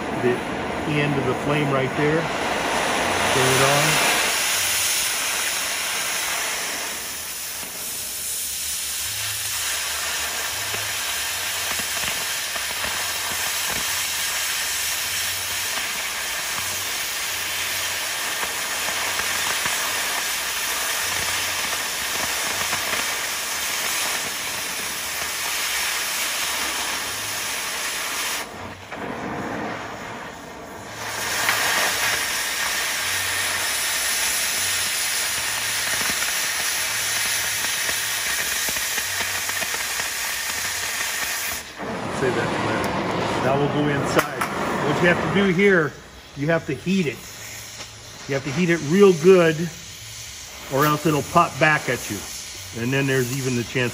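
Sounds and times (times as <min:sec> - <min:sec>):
cutting torch hissing: 0:00.0 - 0:53.9.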